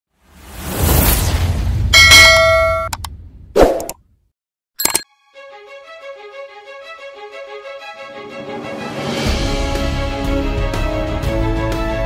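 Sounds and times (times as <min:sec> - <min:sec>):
metallic ding: 0:02.0 - 0:03.0, 0:04.8 - 0:05.1.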